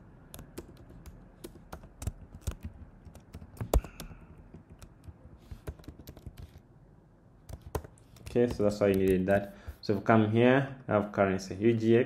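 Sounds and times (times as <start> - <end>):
typing on computer keyboard: 0.3 - 6.6, 7.5 - 9.2.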